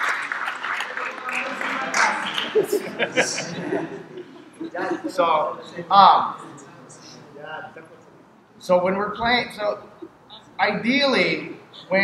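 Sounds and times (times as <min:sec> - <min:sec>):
people clapping: 0:00.0 - 0:03.4
voices: 0:00.0 - 0:12.0.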